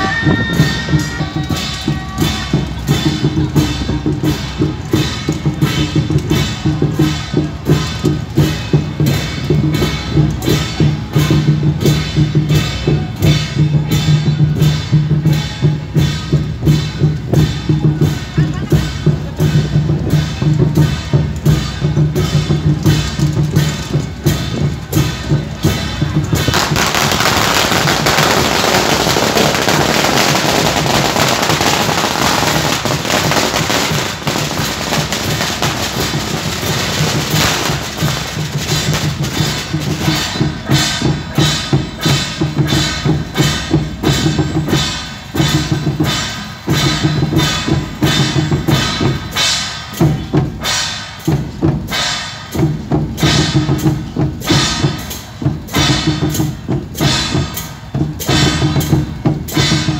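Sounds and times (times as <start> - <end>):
big drum beating: 0.0 - 59.9
firecrackers crackling: 0.0 - 59.9
hand cymbals: 0.0 - 59.9.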